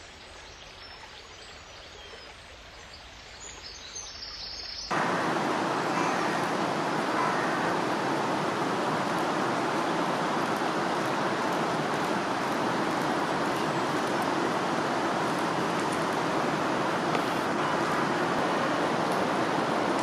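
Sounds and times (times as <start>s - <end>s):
fast-flowing river rushing: 4.9s - 20.0s.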